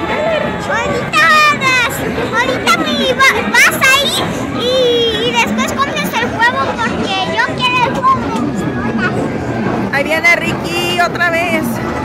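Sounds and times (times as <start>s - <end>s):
children squealing and shouting: 0.0s - 9.2s
crowd chatter: 0.0s - 12.0s.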